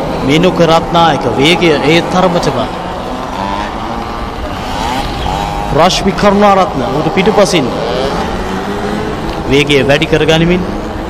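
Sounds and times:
small motorbike engine revving: 0:00.1 - 0:11.0.

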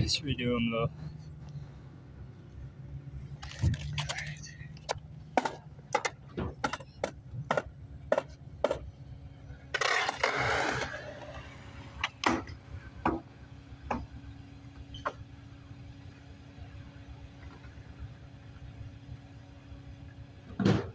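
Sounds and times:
steady low hum: 0:00.0 - 0:20.5
skateboard wheels clacking: 0:04.8 - 0:08.9, 0:09.7 - 0:12.3
skateboard rolling on concrete: 0:09.5 - 0:12.9.

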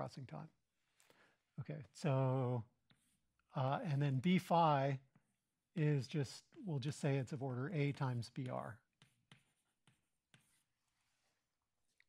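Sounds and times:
chalk tapping on blackboard: 0:02.8 - 0:03.3, 0:07.8 - 0:11.0.

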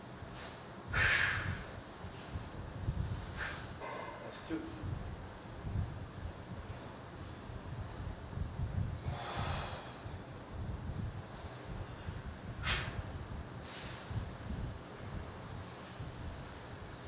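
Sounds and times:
low uneven rumble: 0:00.0 - 0:17.0
man exhaling forcefully: 0:00.9 - 0:01.7, 0:09.0 - 0:10.2, 0:12.6 - 0:13.1.

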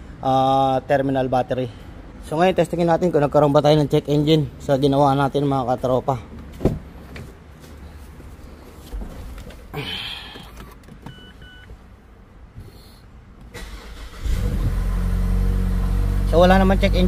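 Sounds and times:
car dashboard beeps: 0:10.4 - 0:11.7
car engine starting and idling: 0:13.2 - 0:17.0.

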